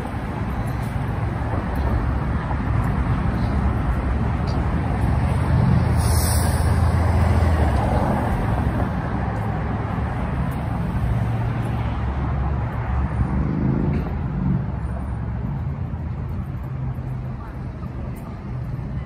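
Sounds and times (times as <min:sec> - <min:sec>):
vehicle accelerating: 0:00.0 - 0:17.4
traffic passing: 0:00.0 - 0:19.0.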